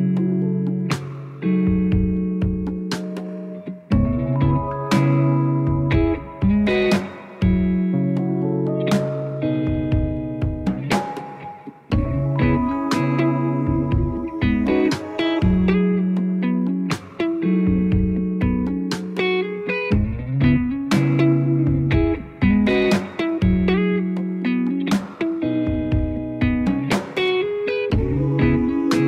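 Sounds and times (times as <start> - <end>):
electric guitar chords and notes: 0.0 - 29.0.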